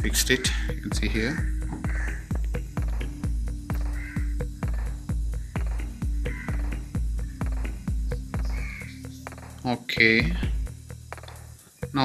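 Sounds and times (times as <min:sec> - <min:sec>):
electronic music with kick drum: 0:00.0 - 0:12.0.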